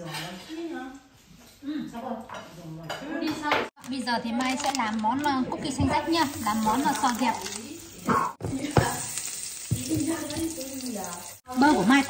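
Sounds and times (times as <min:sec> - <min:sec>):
butter sizzling in frying pan: 0:06.0 - 0:12.0.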